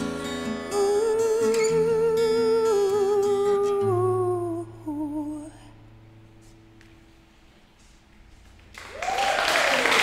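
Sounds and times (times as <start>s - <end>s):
acoustic guitar: 0.0s - 9.0s
woman singing wordless notes: 0.4s - 5.8s.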